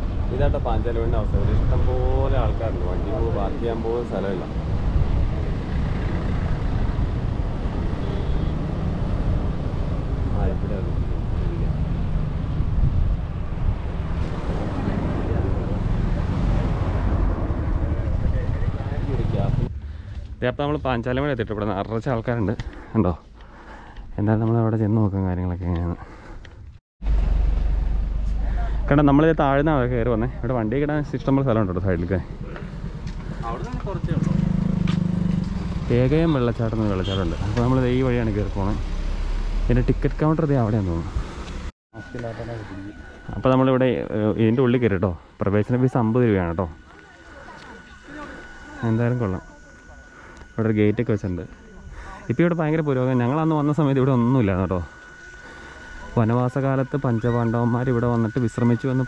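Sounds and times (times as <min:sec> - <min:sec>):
car engine humming: 0:27.0 - 0:59.0.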